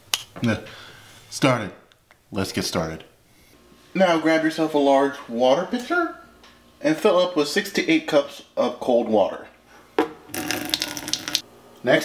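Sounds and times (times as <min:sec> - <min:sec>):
water pouring into plastic pitcher: 0:10.3 - 0:11.4.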